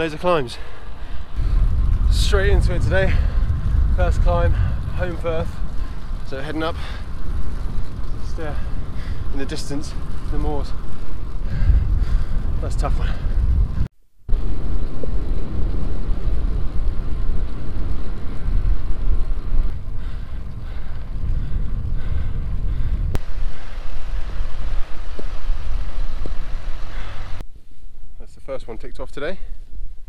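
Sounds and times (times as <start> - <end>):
wind buffeting microphone: 0.0 - 27.4.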